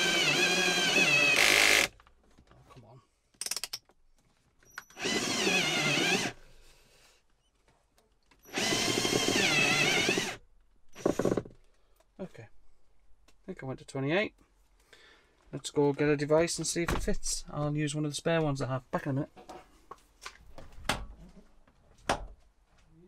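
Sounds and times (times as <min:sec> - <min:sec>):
cordless drill whining: 0:00.0 - 0:01.9, 0:04.8 - 0:06.4, 0:08.4 - 0:11.5.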